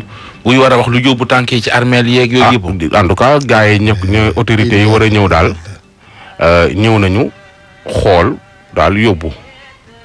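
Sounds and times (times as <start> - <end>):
man talking: 0.5 - 9.4.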